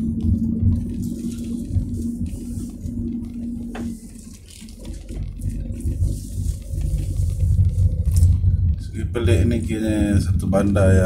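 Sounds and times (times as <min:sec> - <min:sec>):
car driving rumble inside cabin: 0:00.0 - 0:11.0.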